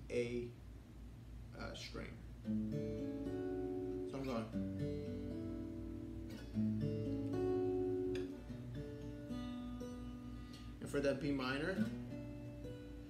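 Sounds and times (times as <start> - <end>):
fingerpicked acoustic guitar: 2.4 - 13.0.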